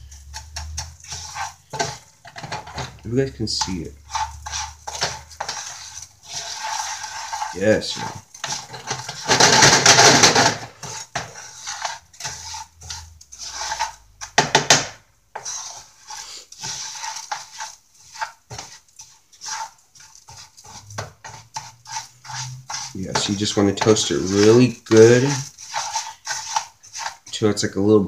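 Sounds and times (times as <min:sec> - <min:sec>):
spatula scraping rice in pan: 0:00.0 - 0:27.9.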